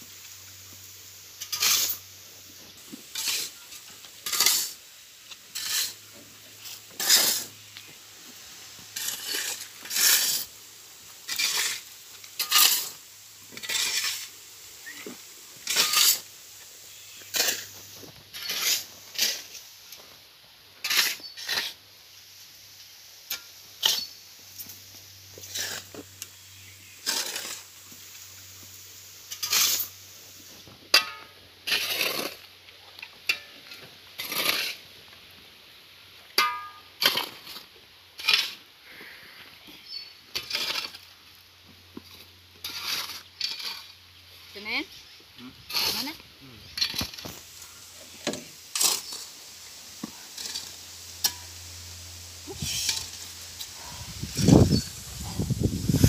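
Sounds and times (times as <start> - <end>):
shovel scraping sand and cement: 0.2 - 20.1, 20.8 - 21.8, 22.4 - 35.0, 36.4 - 56.0.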